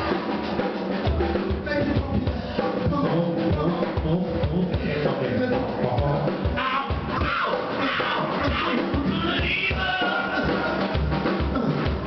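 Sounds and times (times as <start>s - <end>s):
drum kit beat: 0.0s - 12.0s
live band music: 0.0s - 12.0s
person rapping: 1.7s - 10.8s.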